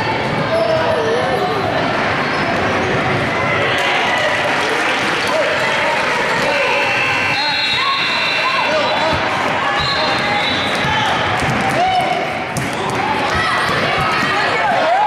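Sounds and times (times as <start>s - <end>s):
voices echoing in gym: 0.0s - 15.0s.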